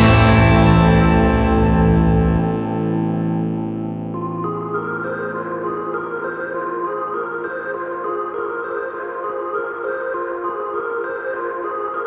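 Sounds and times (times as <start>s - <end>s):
effects-laden guitar chord ringing: 0.0s - 7.5s.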